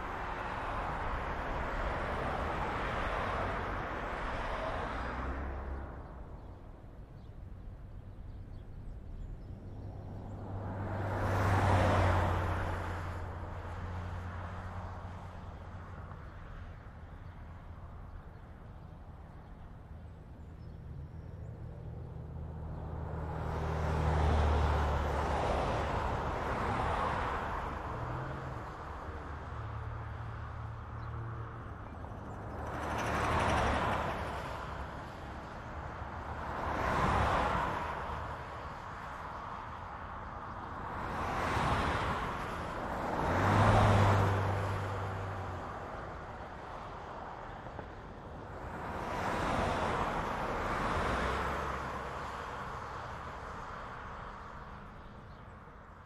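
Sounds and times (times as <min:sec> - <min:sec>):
vehicles passing on highway: 0:00.0 - 0:56.0.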